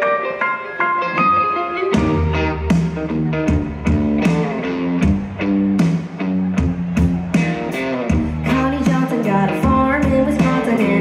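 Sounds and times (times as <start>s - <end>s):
live country band playing: 0.0s - 11.0s.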